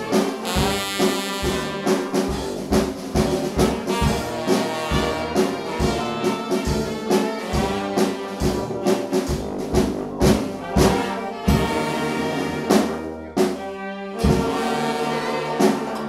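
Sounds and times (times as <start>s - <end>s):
brass band playing: 0.0s - 16.0s
snare and bass drum hits: 0.0s - 16.0s.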